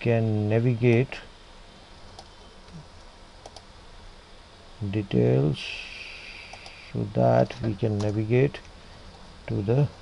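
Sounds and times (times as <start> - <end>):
man's voice: 0.0 - 1.3, 7.0 - 8.6, 9.5 - 9.9
computer mouse clicks: 2.1 - 2.8, 3.4 - 3.7, 6.5 - 6.9.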